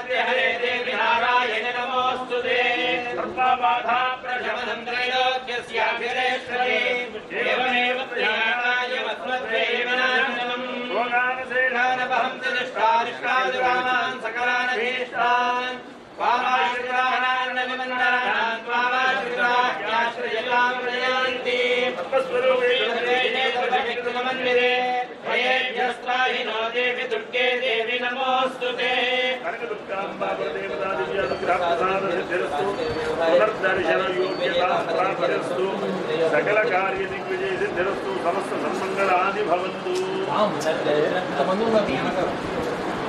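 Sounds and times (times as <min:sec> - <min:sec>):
man chanting: 0:00.0 - 0:41.2.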